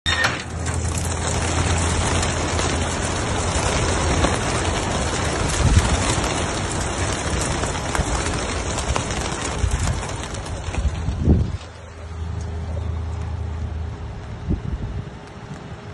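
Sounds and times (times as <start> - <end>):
pigeon wings fluttering: 0.5 - 12.2.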